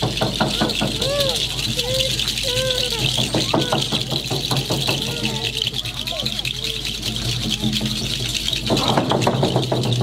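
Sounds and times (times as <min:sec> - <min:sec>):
fast even percussion: 0:00.0 - 0:10.0.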